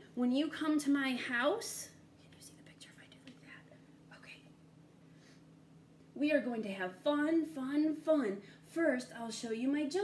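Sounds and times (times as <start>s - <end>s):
low steady hum: 0.0s - 10.0s
faint whispering: 2.2s - 4.6s.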